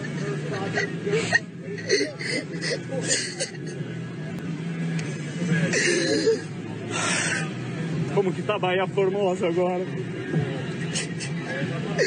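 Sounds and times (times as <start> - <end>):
man sobbing: 0.2 - 3.8.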